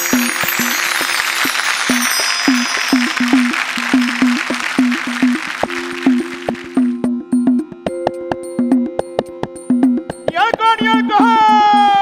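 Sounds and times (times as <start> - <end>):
bright chiming bells: 0.0 - 7.0
hand drums: 0.0 - 11.8.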